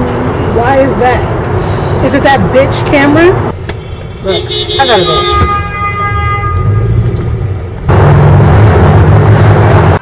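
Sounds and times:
engine and road rumble: 0.0s - 10.0s
rush of road noise: 0.0s - 10.0s
car horn: 3.8s - 7.2s.

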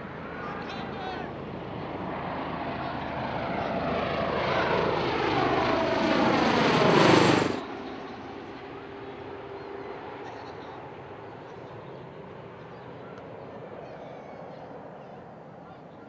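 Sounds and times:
tiltrotor aircraft rotor beat: 0.0s - 16.0s.

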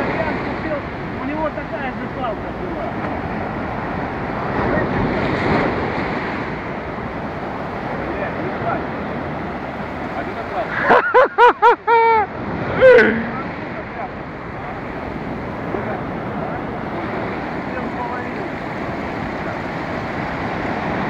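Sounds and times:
surf breaking on beach: 0.0s - 21.0s.

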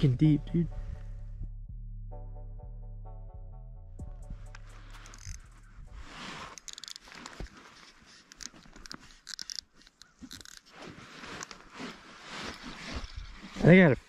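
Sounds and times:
background music: 0.0s - 6.6s
small clicks: 4.5s - 5.5s, 6.5s - 11.6s
crunching of snow: 4.6s - 14.0s
clothing rustling: 4.8s - 13.9s.

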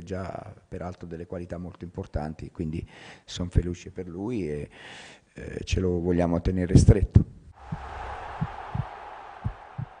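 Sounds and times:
low heartbeat thumps: 7.7s - 10.0s.

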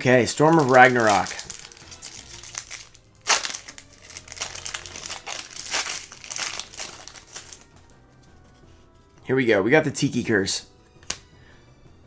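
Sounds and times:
foil wrapper crinkling: 0.0s - 7.7s.

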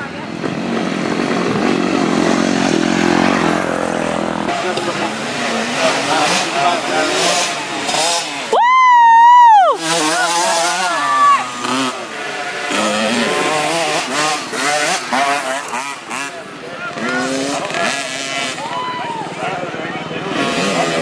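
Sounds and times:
dirt bike engine revving: 0.0s - 18.7s, 20.0s - 21.0s.

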